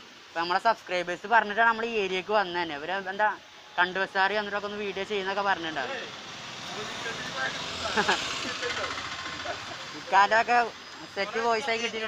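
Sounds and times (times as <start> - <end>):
motor vehicle passing: 5.5 - 11.2.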